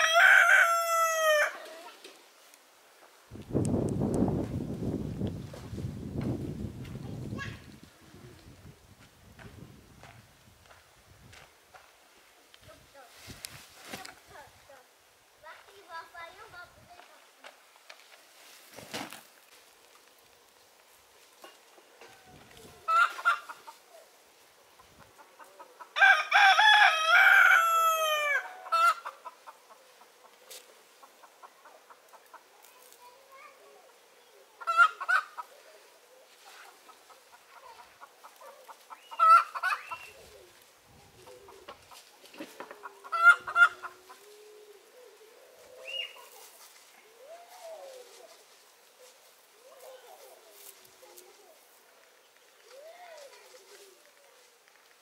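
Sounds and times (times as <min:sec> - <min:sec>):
rooster crowing: 0:00.0 - 0:01.7, 0:26.0 - 0:29.0
chicken calls: 0:00.0 - 0:01.9, 0:22.1 - 0:24.0, 0:24.7 - 0:30.4, 0:33.9 - 0:48.4.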